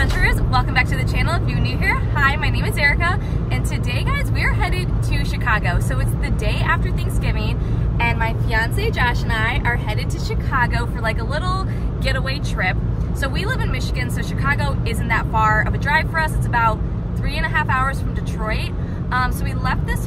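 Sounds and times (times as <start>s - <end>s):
car road and engine rumble: 0.0s - 20.0s
woman talking: 0.0s - 20.0s.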